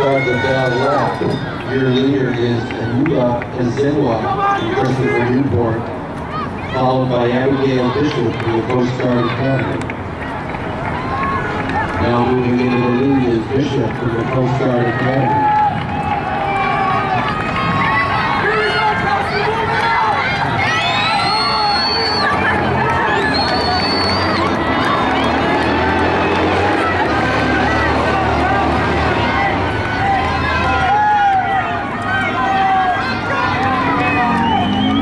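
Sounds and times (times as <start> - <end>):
crowd cheering and shouting: 0.0 - 35.0.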